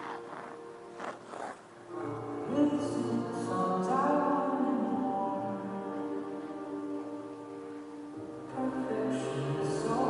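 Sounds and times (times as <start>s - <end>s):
skate blades scraping ice: 0.0s - 1.6s
quiet music: 0.0s - 10.0s.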